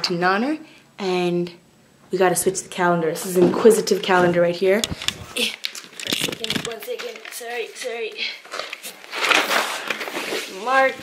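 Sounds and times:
paper rustling: 0:08.5 - 0:10.7.

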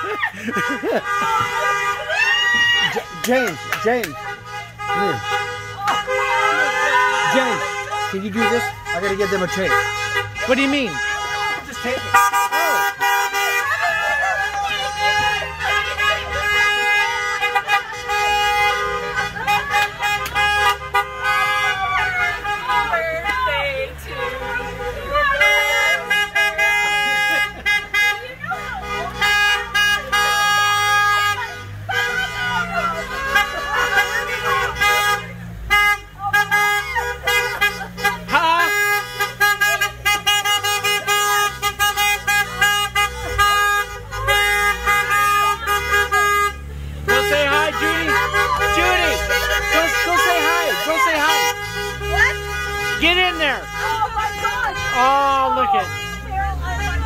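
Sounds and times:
car horns honking: 0:00.0 - 0:57.0
people calling out: 0:00.0 - 0:57.0.

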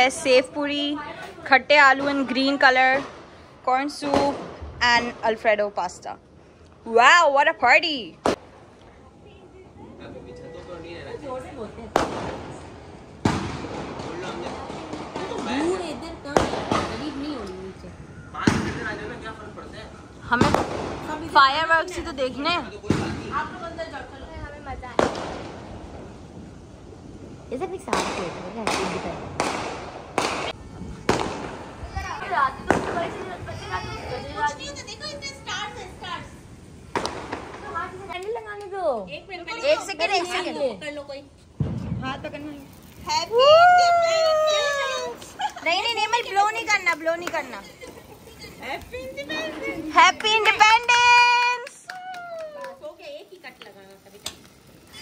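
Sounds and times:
fireworks bangs: 0:00.0 - 0:06.2, 0:06.8 - 0:55.0
voices: 0:00.0 - 0:55.0
bang with trailing rumble: 0:27.9 - 0:31.9, 0:41.6 - 0:42.4.

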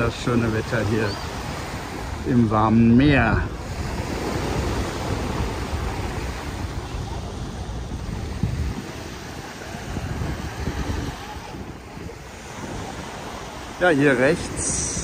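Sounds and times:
small waves washing onto sand: 0:00.0 - 0:15.0
wind buffeting microphone: 0:00.0 - 0:15.0.

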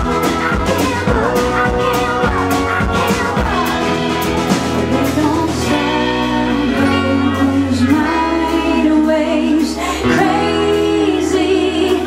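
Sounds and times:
electric bass: 0:00.0 - 0:12.0
guitar: 0:00.0 - 0:12.0
woman singing: 0:00.0 - 0:12.0.

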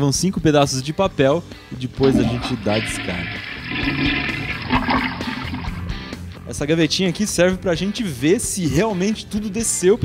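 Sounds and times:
toilet flushing: 0:02.0 - 0:06.2.

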